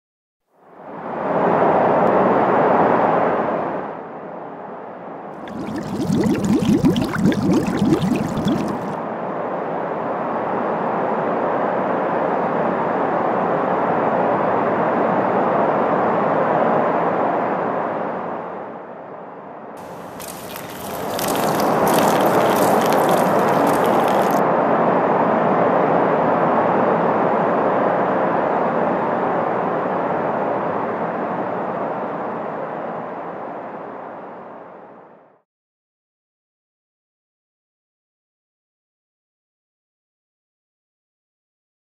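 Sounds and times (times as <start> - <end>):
liquid being poured: 5.4 - 9.0, 19.8 - 24.4
crackling: 19.8 - 24.4.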